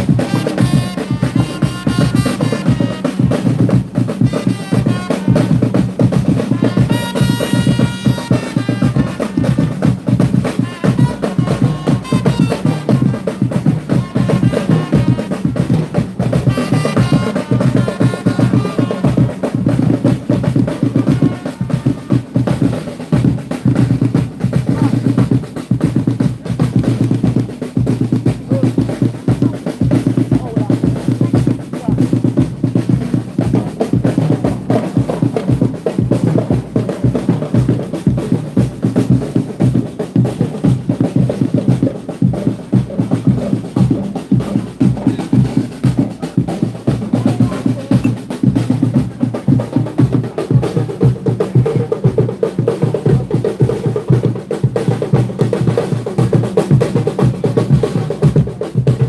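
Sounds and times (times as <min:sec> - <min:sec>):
drums in fast rolling rhythm: 0:00.0 - 0:59.0.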